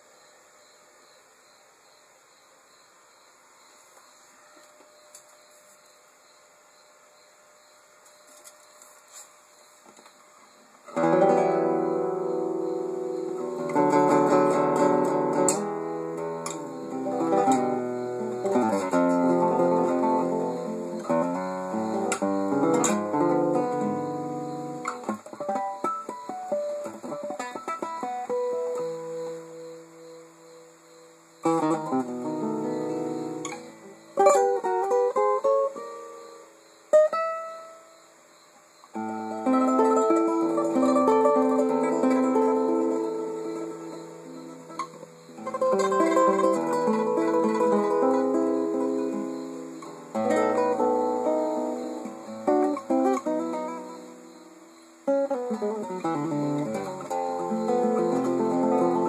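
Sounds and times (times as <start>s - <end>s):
nylon-string guitar playing: 10.9s - 38.0s, 39.0s - 59.0s.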